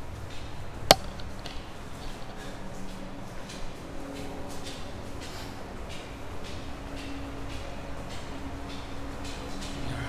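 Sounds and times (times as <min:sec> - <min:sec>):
footsteps on tiled stairs: 0:00.0 - 0:10.0
sharp shoe tap on step: 0:00.9 - 0:01.6.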